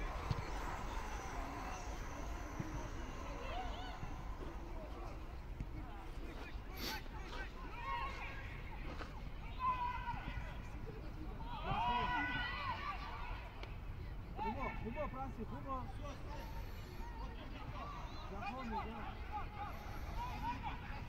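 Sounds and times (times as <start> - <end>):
distant football players shouting: 0.0 - 5.3.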